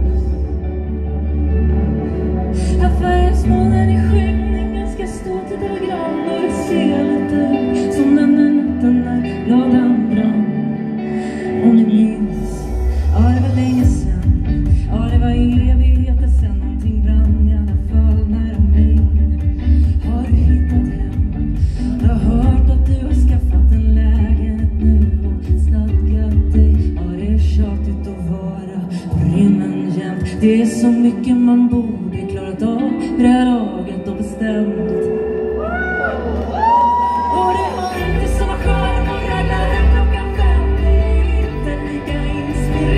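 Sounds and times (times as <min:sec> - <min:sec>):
heavy bass: 0:00.0 - 0:29.5, 0:35.4 - 0:42.9
electric guitar and band: 0:00.0 - 0:42.9
woman singing into microphone: 0:02.4 - 0:42.9.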